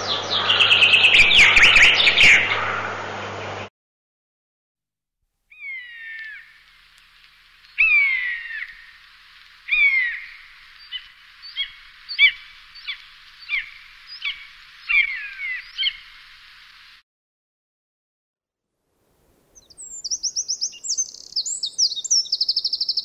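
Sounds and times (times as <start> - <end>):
buzzard mewing calls: 7.8 - 16.2.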